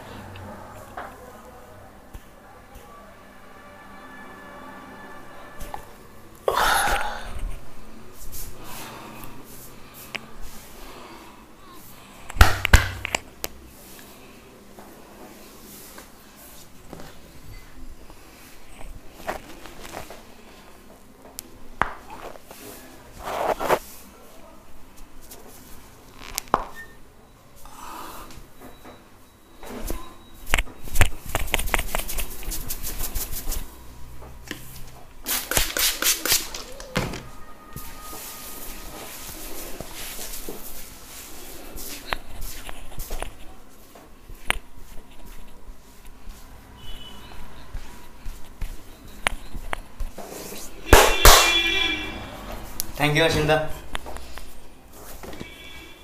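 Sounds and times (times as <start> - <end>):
slaps and knocks: 12.4 - 13.1, 50.9 - 51.7
hands rubbing skin and hair: 22.2 - 24.0, 30.9 - 33.8, 34.6 - 36.9, 37.9 - 46.5.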